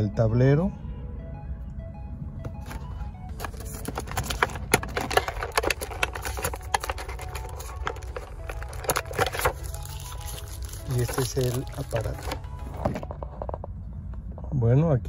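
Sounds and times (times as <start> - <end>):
faint background music: 0.0 - 15.0
low steady rumble: 0.0 - 15.0
plastic packaging crinkling: 2.6 - 13.2.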